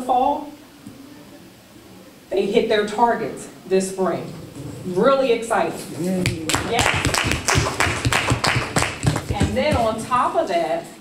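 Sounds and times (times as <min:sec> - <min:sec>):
people clapping: 0:06.2 - 0:09.9.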